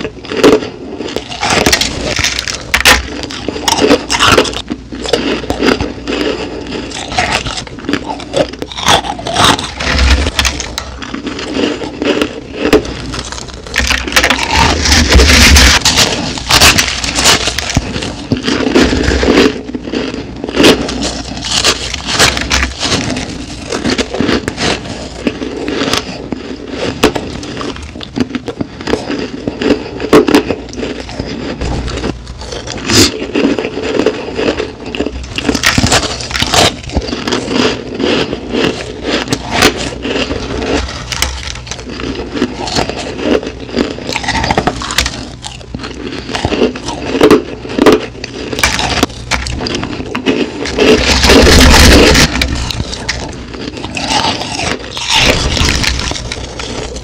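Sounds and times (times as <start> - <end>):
chewing crushed ice: 0.0 - 57.0.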